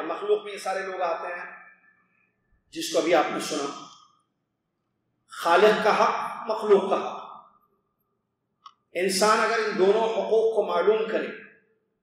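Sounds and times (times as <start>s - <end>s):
man speaking: 0.0s - 1.6s, 2.7s - 3.9s, 5.4s - 7.4s, 9.0s - 11.3s.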